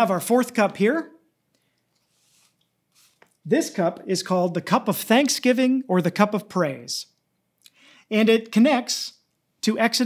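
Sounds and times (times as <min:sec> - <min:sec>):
man speaking: 0:00.0 - 0:01.2, 0:03.4 - 0:07.2, 0:08.1 - 0:10.0.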